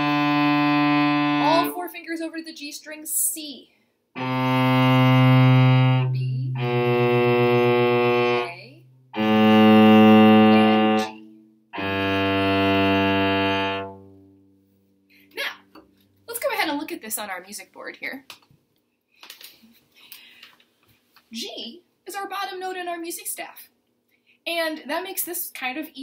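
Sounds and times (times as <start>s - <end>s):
cello bowing descending notes: 0.0s - 1.8s, 4.2s - 14.5s.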